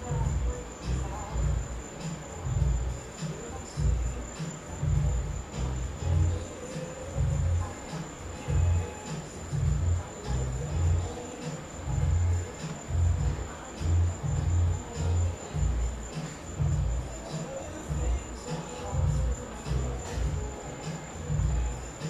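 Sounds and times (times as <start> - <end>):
cricket trilling: 0.0 - 22.0
low thumps: 4.8 - 6.4.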